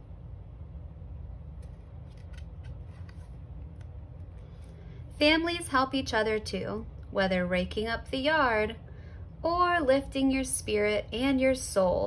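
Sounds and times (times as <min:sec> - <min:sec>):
steady low hum: 0:00.0 - 0:12.0
cardboard page turning: 0:01.5 - 0:04.7.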